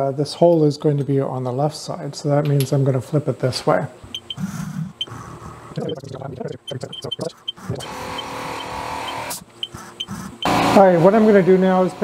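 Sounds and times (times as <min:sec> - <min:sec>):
mill motor whirring: 0:05.8 - 0:10.8.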